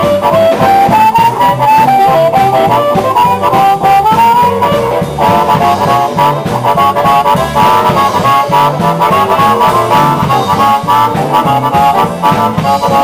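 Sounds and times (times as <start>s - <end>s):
drums: 0.0s - 13.0s
lead melody with bending notes: 0.0s - 13.0s
steady bass line: 0.0s - 13.0s.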